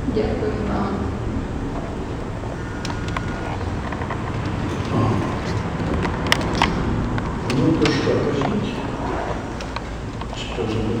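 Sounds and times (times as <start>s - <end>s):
low room murmur: 0.0s - 11.0s.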